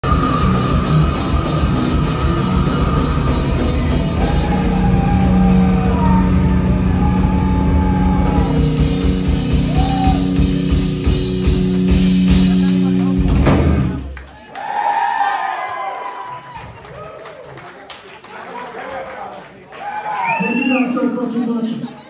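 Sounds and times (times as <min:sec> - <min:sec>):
drum kit: 0:00.0 - 0:14.2
electric guitar: 0:00.0 - 0:14.2.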